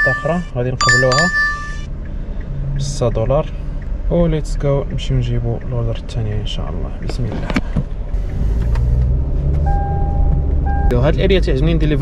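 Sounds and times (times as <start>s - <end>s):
steady electronic beep: 0.0s - 1.9s
car engine rumbling: 0.0s - 12.0s.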